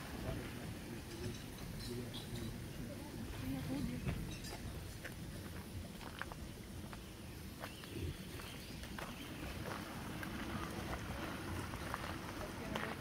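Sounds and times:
low outdoor rumble: 0:00.0 - 0:13.0
footsteps on gravel: 0:04.1 - 0:13.0.

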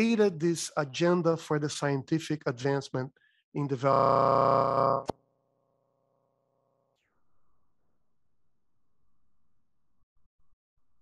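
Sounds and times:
voice frozen into held tone: 0:03.7 - 0:05.1.

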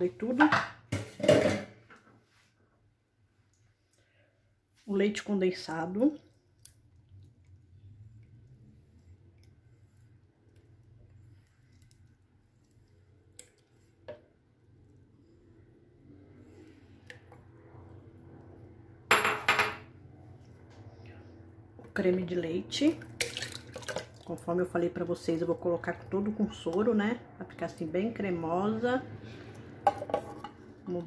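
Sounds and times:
kitchenware clattering: 0:00.4 - 0:01.8, 0:19.1 - 0:19.9.

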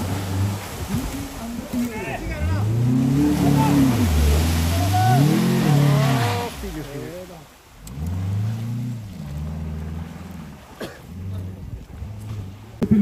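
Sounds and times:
people's voices: 0:00.8 - 0:07.6
car engine revving hard: 0:02.3 - 0:07.0, 0:07.8 - 0:12.6.

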